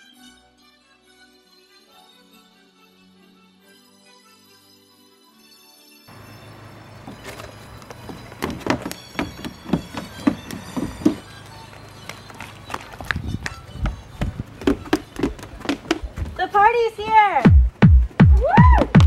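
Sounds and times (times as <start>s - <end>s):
running footsteps in flip-flops: 6.1s - 19.0s.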